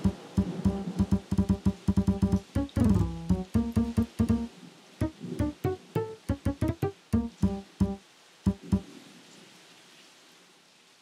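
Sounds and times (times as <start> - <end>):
music: 0.0 - 8.8
faint steady hiss: 0.0 - 11.0.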